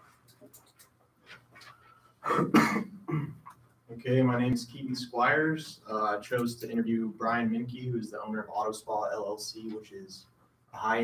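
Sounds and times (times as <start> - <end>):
person coughing: 2.2 - 3.4.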